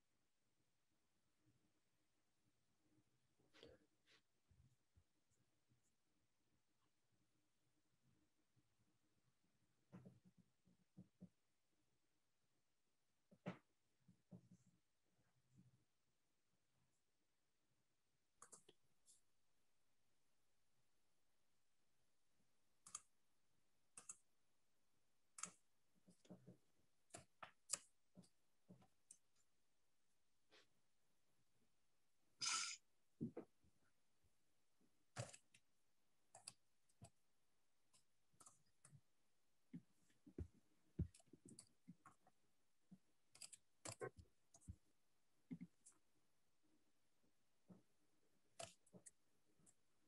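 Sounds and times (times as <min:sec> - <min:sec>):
computer clicks and soft knocks: 0:09.7 - 0:11.7, 0:18.2 - 0:19.3, 0:22.6 - 0:24.5, 0:25.2 - 0:29.6, 0:34.8 - 0:46.2, 0:47.6 - 0:50.0.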